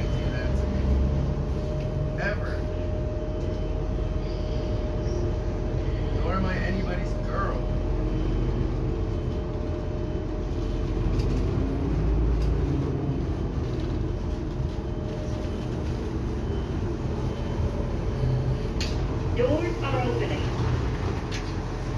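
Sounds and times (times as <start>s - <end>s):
bus engine and road rumble: 0.0s - 21.9s.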